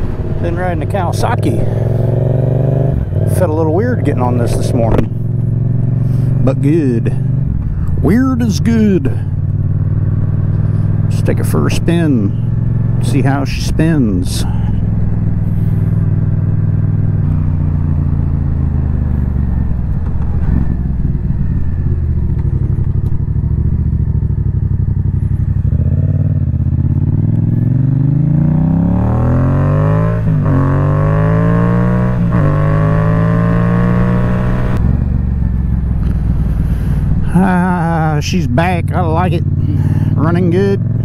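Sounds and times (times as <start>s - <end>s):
motorcycle engine accelerating: 0.0s - 41.0s.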